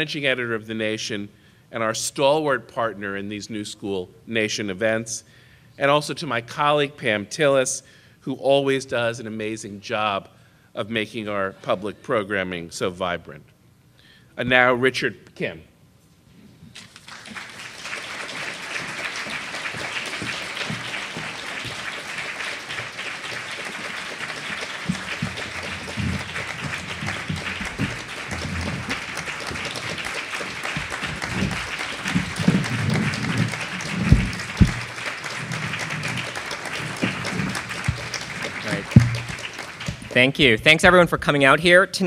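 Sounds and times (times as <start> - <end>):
audience applauding: 16.8 - 40.5
low bumps and knocks: 18.8 - 40.2.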